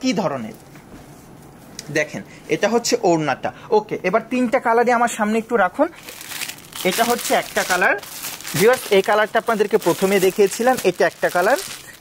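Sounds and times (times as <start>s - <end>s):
plastic packaging crinkling: 6.0s - 12.0s
person talking: 6.8s - 12.0s.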